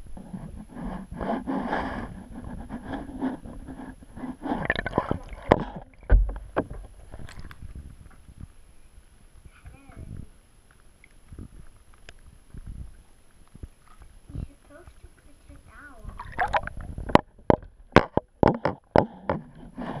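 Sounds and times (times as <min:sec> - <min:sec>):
bathwater sloshing and gurgling: 0:01.1 - 0:07.9, 0:10.9 - 0:19.3.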